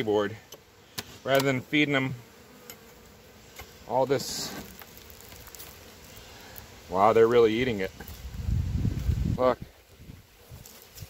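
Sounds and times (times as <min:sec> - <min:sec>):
honey bees humming: 0:00.0 - 0:11.0.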